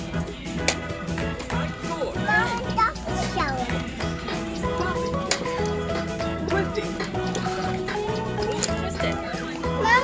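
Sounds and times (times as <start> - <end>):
background music: 0.0 - 10.0
child speaking: 2.0 - 3.8, 9.8 - 10.0.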